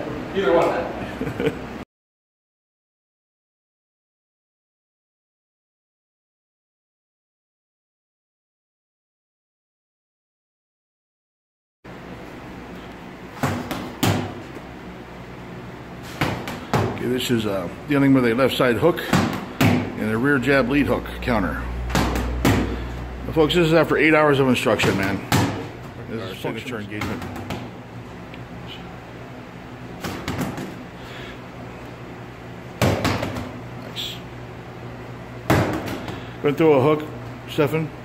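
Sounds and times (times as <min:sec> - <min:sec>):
gloved boxing punches: 0:13.4 - 0:14.4, 0:16.1 - 0:17.0, 0:19.0 - 0:20.0, 0:21.9 - 0:22.8, 0:24.7 - 0:25.7, 0:30.0 - 0:30.8, 0:32.8 - 0:33.6, 0:35.5 - 0:36.2.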